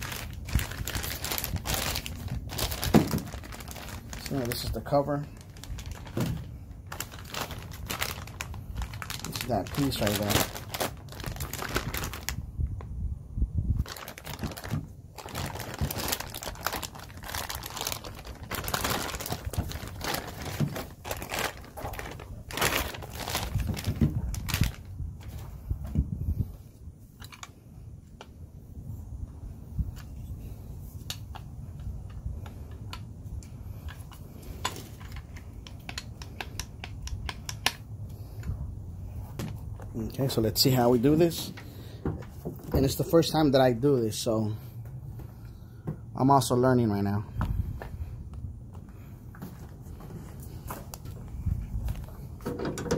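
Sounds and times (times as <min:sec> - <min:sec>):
plastic packaging crinkling: 0:00.0 - 0:12.4, 0:13.8 - 0:25.5.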